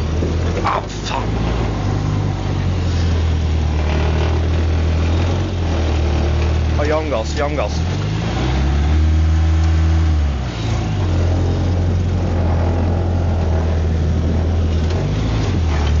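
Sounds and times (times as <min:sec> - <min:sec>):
car engine running: 0:00.0 - 0:16.0.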